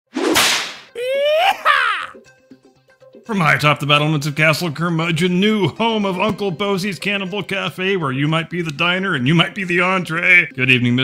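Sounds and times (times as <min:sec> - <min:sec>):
whip-like rush of noise: 0:00.1 - 0:00.9
pitched cry: 0:01.0 - 0:02.2.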